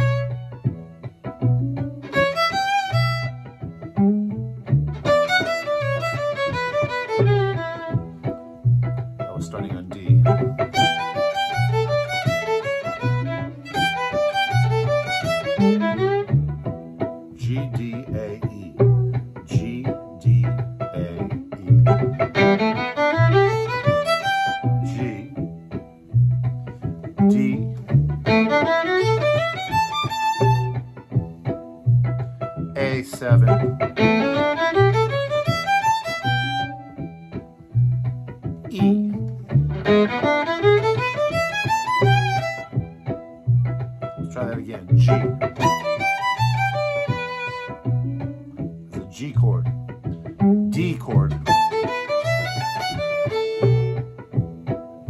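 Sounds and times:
fiddle phrases: 0:00.0 - 0:55.0
steady low pulse: 0:17.4 - 0:22.5, 0:43.5 - 0:45.9.

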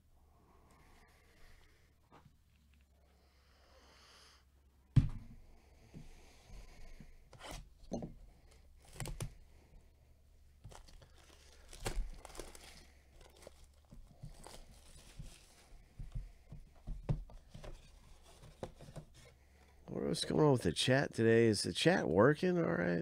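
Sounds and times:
wrapping torn and crinkled: 0:10.6 - 0:15.6.

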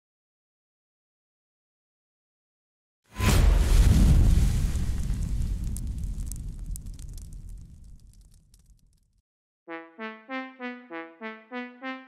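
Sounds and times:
deep rumble: 0:03.2 - 0:08.8
fire crackles: 0:03.2 - 0:09.2.

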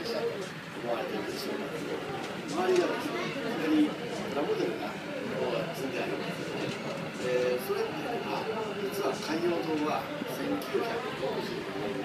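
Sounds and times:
chatter of many voices: 0:00.0 - 0:12.0
steady background noise: 0:00.0 - 0:12.0.

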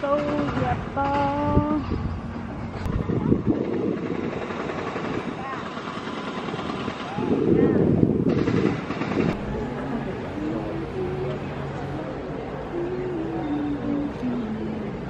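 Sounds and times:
wind buffeting microphone: 0:00.0 - 0:15.0
faint distant voices: 0:02.5 - 0:15.0.

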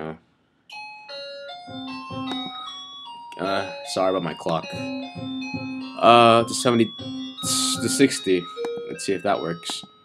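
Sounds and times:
musical clock chiming tune: 0:00.7 - 0:10.0.

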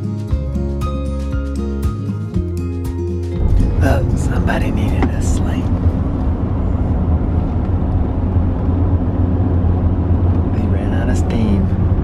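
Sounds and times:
road and engine rumble: 0:03.2 - 0:12.0.

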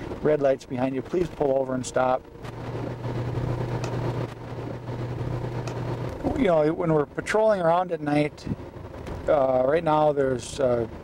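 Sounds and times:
car engine and tyres droning: 0:00.0 - 0:11.0.

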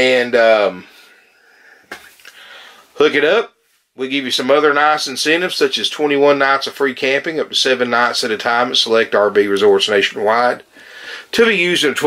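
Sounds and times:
man breathing in: 0:00.8 - 0:03.0, 0:10.7 - 0:11.3.

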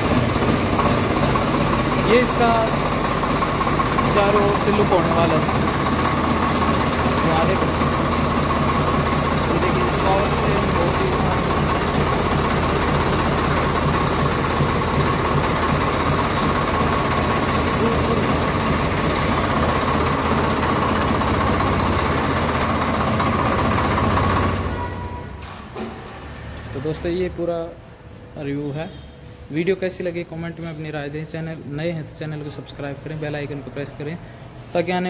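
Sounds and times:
diesel tractor engine idling: 0:00.0 - 0:25.7.

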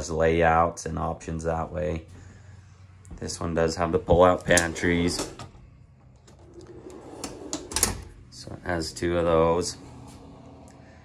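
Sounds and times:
cabinet rolling on runners: 0:06.3 - 0:08.0.

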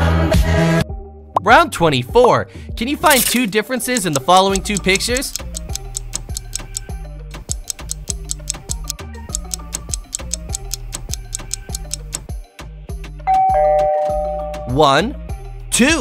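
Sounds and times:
countdown music with ticking beat: 0:03.9 - 0:12.4.

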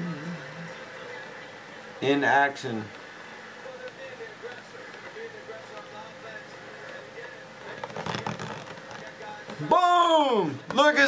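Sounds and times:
faint distant voices: 0:00.0 - 0:11.0
faint room hum: 0:00.0 - 0:11.0.

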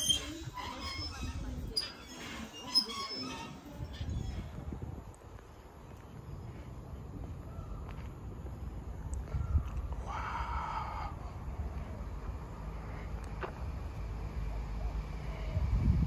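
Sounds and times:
wind rumble on microphone: 0:00.1 - 0:01.9, 0:02.9 - 0:12.7, 0:15.1 - 0:16.0.

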